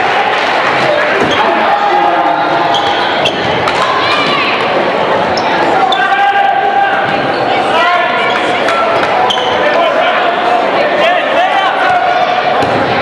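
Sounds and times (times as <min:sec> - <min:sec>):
crowd voices echoing: 0:00.0 - 0:13.0
sneakers squeaking: 0:02.6 - 0:06.2, 0:08.1 - 0:09.8.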